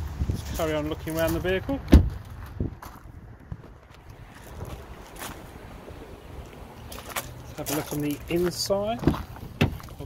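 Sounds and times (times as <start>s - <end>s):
wind buffeting microphone: 0.0s - 7.2s
footsteps on gravel: 0.4s - 5.8s, 6.4s - 10.0s
car door shutting: 9.0s - 9.9s.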